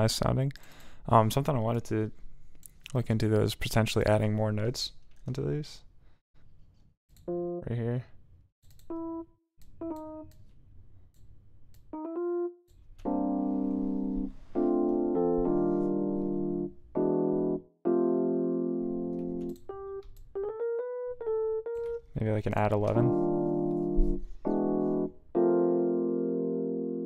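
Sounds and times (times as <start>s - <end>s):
keyboard instrument notes and chords: 7.2s - 8.0s, 8.8s - 10.4s, 11.8s - 27.0s.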